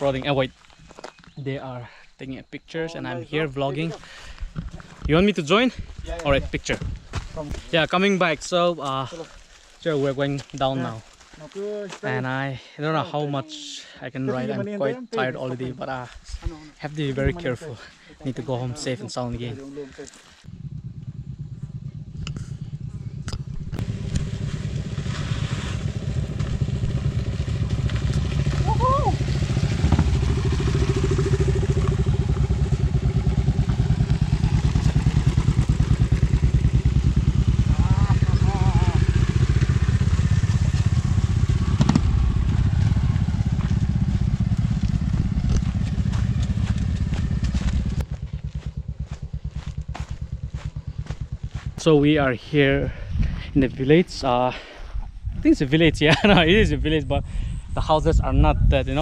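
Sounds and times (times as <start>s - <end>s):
voices: 0.0s - 0.6s, 1.4s - 4.1s, 4.8s - 20.2s, 27.4s - 29.4s, 37.5s - 39.5s, 51.7s - 54.6s
motorcycle engine running: 17.1s - 53.5s.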